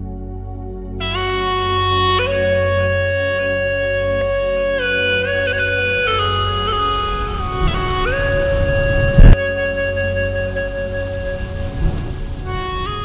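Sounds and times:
instrumental music with held notes: 0.0 - 13.0
steady rain: 0.9 - 13.0
thunder crack: 5.3 - 9.4, 10.4 - 13.0.

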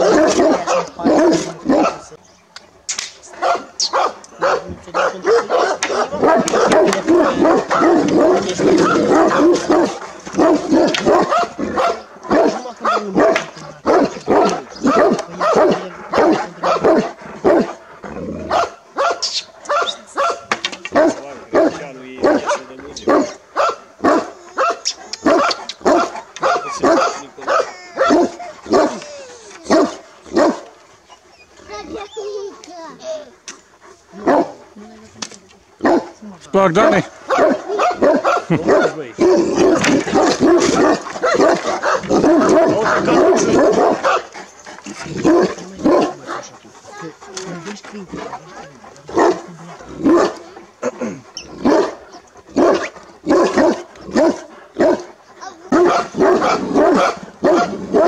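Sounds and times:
large dogs barking: 0.0 - 2.2, 3.3 - 58.0.

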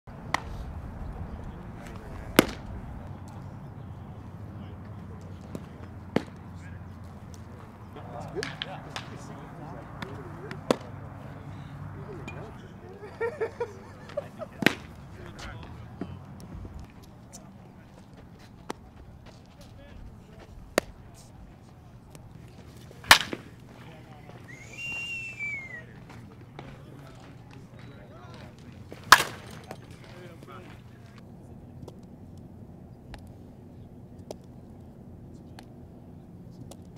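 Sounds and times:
baseballs cracking into mitts and bats: 0.1 - 36.9
faint voices: 0.1 - 36.9.

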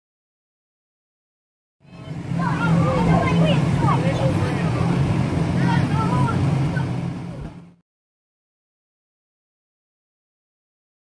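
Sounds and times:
children's voices: 1.9 - 7.6
blower humming: 1.9 - 7.8.

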